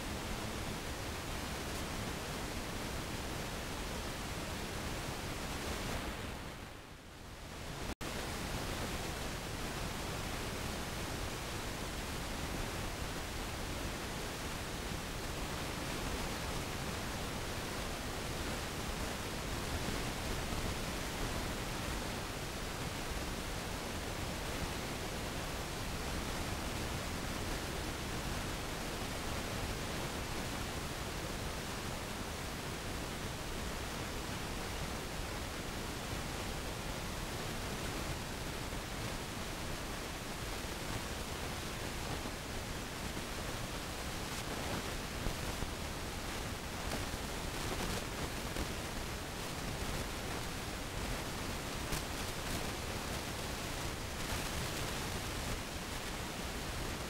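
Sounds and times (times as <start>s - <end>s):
steady hiss: 0.0s - 57.0s.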